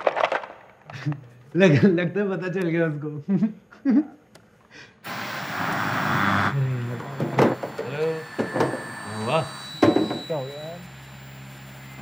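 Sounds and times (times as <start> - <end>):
white noise static: 5.0 - 12.0
voices: 5.1 - 10.9.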